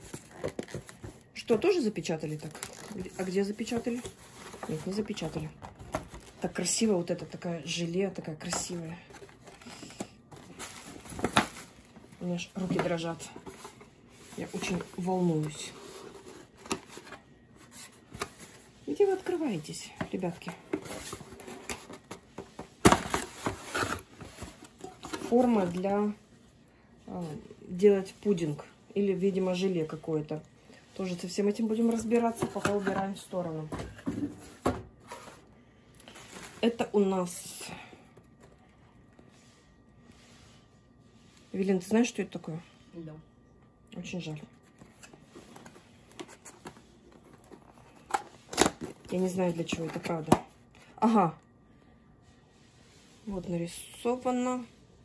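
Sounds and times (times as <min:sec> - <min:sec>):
cardboard box rustling: 0:00.0 - 0:01.6, 0:02.4 - 0:06.4, 0:08.7 - 0:26.0.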